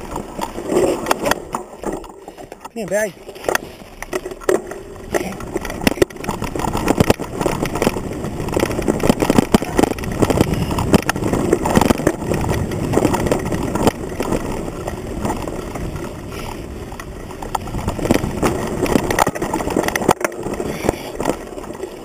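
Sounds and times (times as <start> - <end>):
mountain bike rattling over dirt: 0.0 - 22.0.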